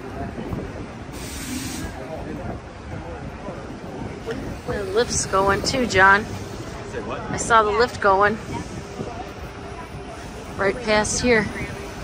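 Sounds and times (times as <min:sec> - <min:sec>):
faint voices of passers-by: 0:00.0 - 0:12.0
low rumble of traffic: 0:00.0 - 0:12.0
short hiss: 0:01.1 - 0:02.0.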